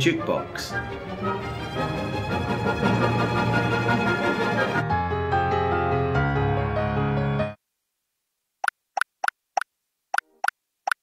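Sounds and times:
background music: 0:00.0 - 0:07.6.

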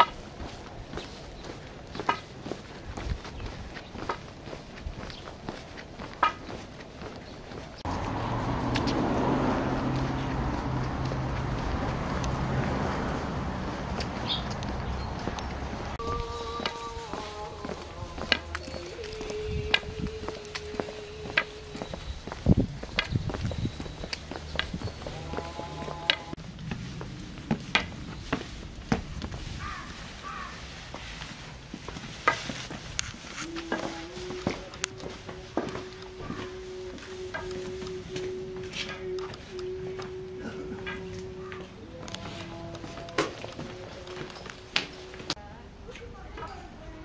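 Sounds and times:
footsteps crunching on dirt: 0:00.0 - 0:45.5
low hum and rushing noise: 0:07.7 - 0:45.4
held tones stepping down: 0:33.5 - 0:45.4.

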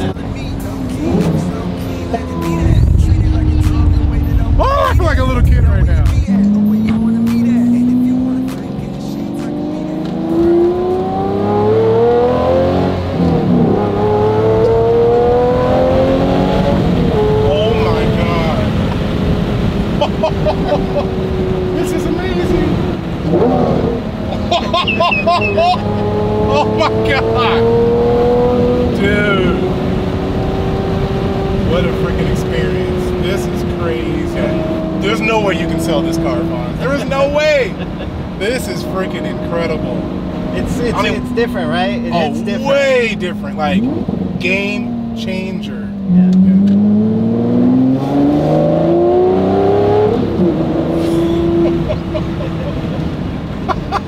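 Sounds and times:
sports car engine revving: 0:00.0 - 0:54.0.

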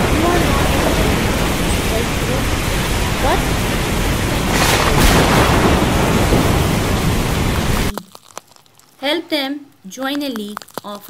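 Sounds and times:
low rumble: 0:00.0 - 0:07.9
heavy rain hissing: 0:00.0 - 0:08.0.

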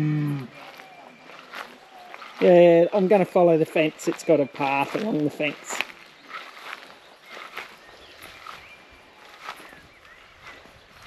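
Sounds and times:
footsteps through long grass: 0:00.5 - 0:11.0.

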